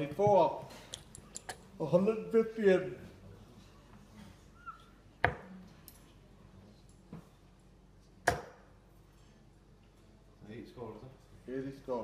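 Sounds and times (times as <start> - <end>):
darts thudding into dartboard: 8.2 - 8.7.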